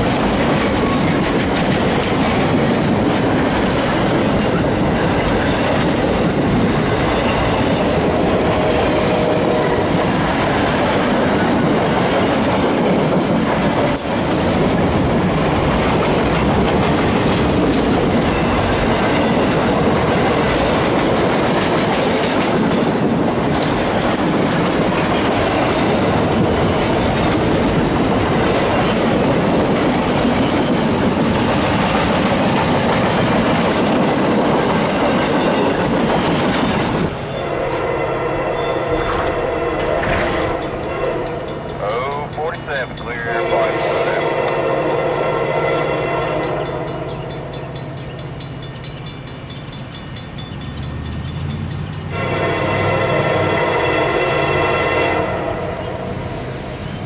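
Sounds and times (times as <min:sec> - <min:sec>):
freight train rolling past: 0:00.0 - 0:57.0.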